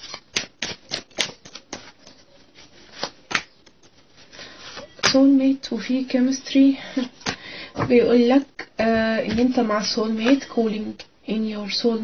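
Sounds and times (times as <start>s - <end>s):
cards clicking and tapping: 0.1s - 2.2s.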